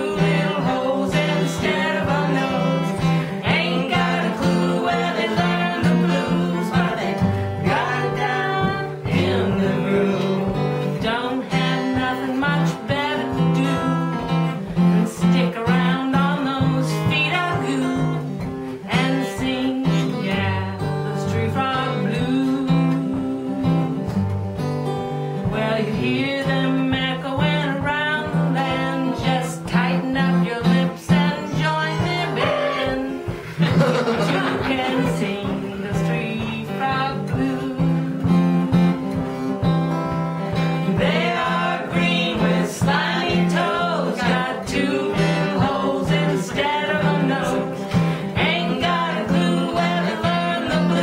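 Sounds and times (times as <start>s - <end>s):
women singing: 0.0s - 24.3s, 25.3s - 51.0s
acoustic guitar strumming: 0.0s - 51.0s.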